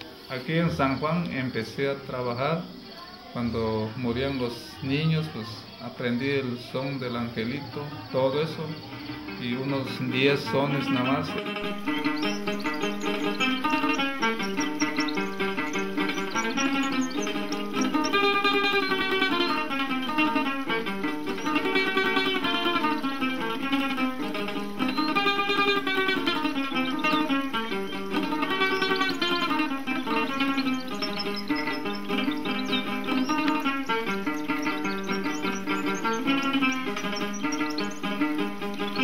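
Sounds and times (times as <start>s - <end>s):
small folk guitars playing: 0.0s - 39.0s.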